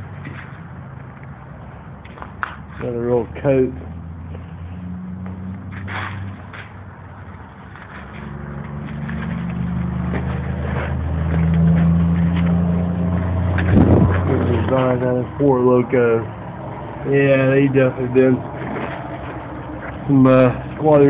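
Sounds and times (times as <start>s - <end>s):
vehicle engine humming: 0.0s - 21.0s.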